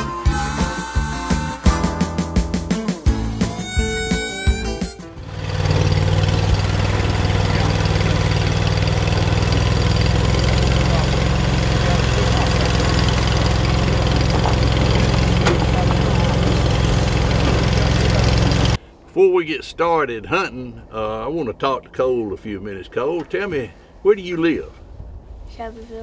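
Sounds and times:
music: 0.0 - 5.4
vehicle engine driving: 3.7 - 18.8.

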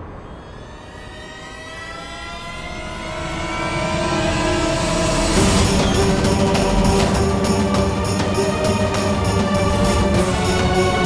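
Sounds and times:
music: 0.0 - 11.0
rising soundtrack swell: 0.0 - 11.0.

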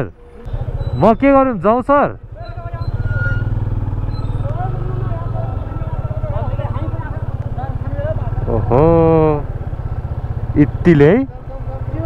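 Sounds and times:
motorcycle engine idling: 0.1 - 12.0.

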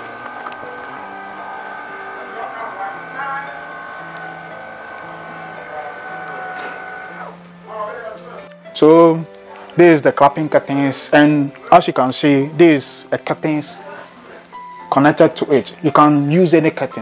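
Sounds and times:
small electric motor whining: 0.0 - 7.4.

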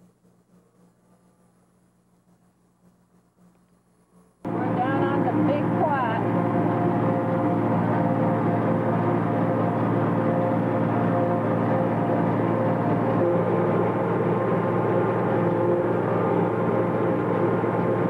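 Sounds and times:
tractor and forage harvester drone: 4.5 - 18.0.

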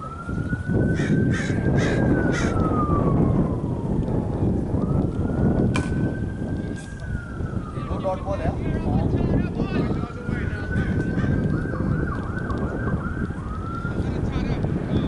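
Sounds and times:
distant siren wailing: 0.0 - 15.0
wind rumbling on microphone: 0.0 - 15.0.

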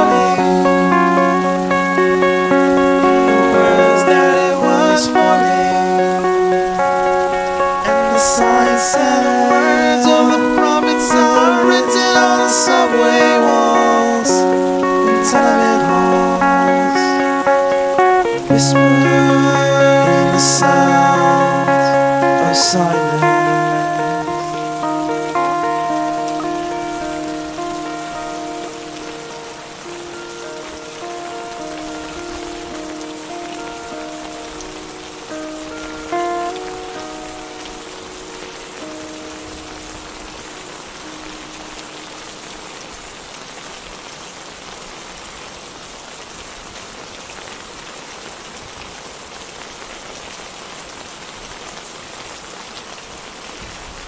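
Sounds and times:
sustained song notes ringing: 0.0 - 42.7
steady rain falling: 0.0 - 54.0.

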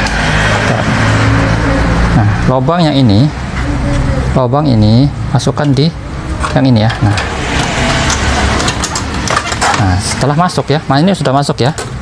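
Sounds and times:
vehicle passing with low rumble: 0.0 - 11.0
steady traffic noise: 0.0 - 12.0.

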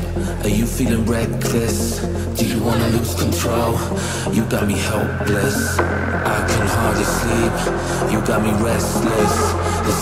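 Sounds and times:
deep bass: 0.0 - 10.0
electronic dance music: 2.8 - 10.0.

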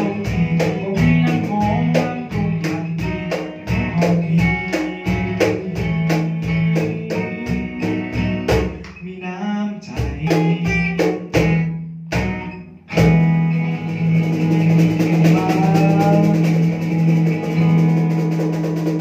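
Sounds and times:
cajon hits: 0.0 - 9.0, 10.0 - 19.0
strummed acoustic guitar: 0.0 - 19.0.

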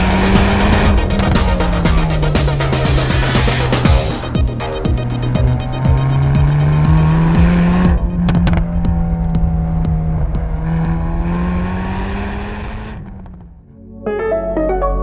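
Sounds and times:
soundtrack music: 0.0 - 11.5, 13.6 - 15.0
car engine revving hard: 0.0 - 13.4.

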